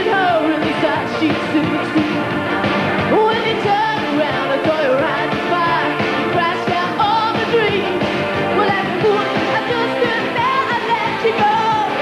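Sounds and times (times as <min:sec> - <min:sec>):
person singing: 0:00.0 - 0:02.4, 0:03.1 - 0:12.0
drum beat: 0:00.0 - 0:12.0
pop-rock band playing: 0:00.0 - 0:12.0.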